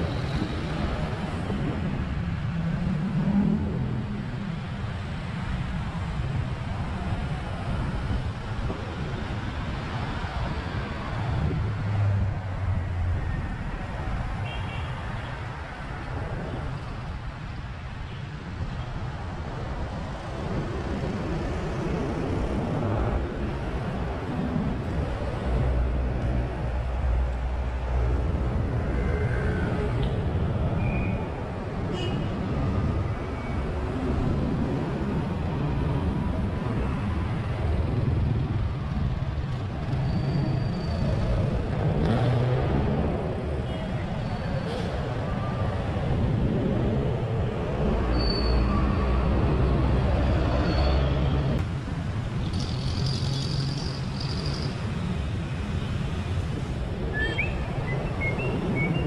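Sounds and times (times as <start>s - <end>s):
passing cars and motorcycles: 0.0s - 59.0s.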